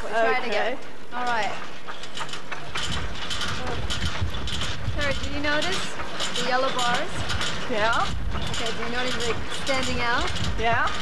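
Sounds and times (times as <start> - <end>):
propeller mechanical whirr: 2.3 - 11.0.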